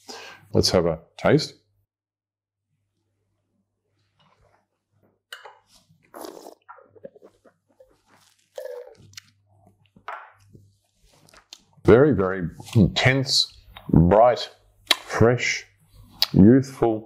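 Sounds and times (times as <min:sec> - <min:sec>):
wine slurping and swishing: 0:05.6 - 0:09.2.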